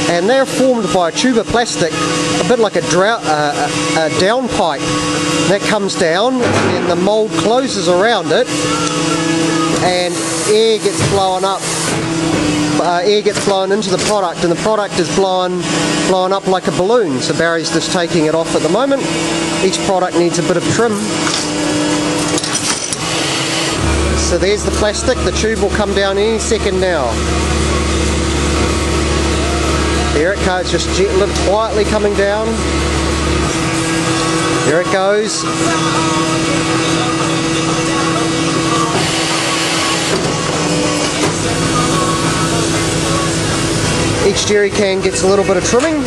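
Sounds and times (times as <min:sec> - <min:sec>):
machine hum: 0:00.0 - 0:46.0
machinery noise: 0:00.0 - 0:46.0
machine hiss: 0:09.6 - 0:12.2.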